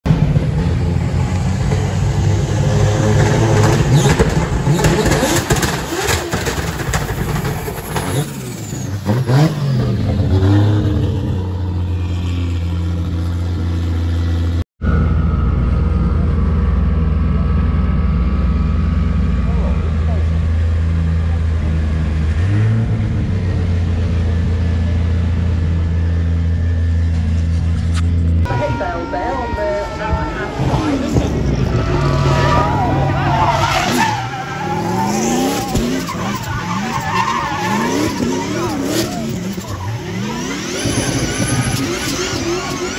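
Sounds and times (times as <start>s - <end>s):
car engines revving: 0.0s - 42.9s.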